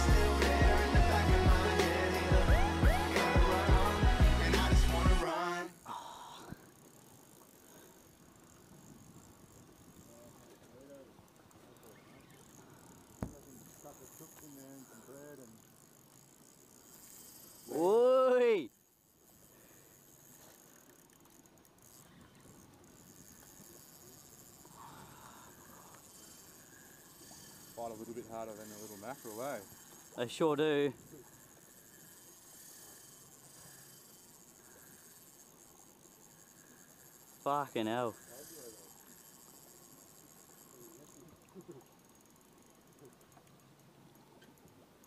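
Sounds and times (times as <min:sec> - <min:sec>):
fishing reel drag buzzing: 0:00.0 - 0:45.0.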